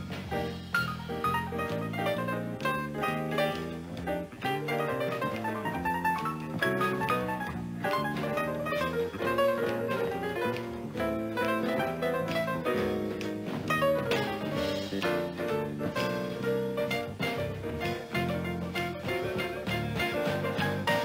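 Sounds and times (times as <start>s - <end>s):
jazz piano: 0.0s - 21.0s.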